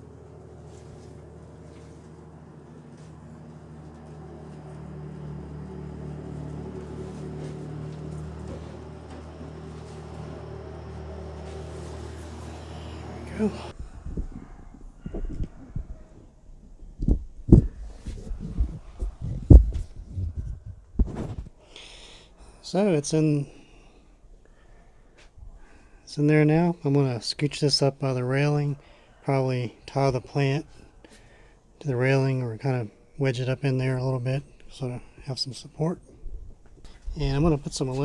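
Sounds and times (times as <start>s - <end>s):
low mechanical hum: 0.0s - 38.0s.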